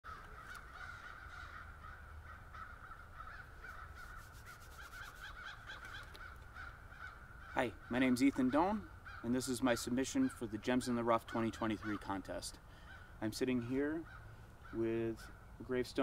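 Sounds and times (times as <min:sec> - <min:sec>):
distant birds calling: 0:00.0 - 0:16.0.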